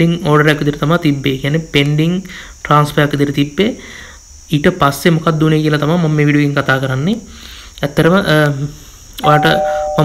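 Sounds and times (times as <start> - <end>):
man's voice: 9.2 - 10.0
two-note chime: 9.2 - 10.0.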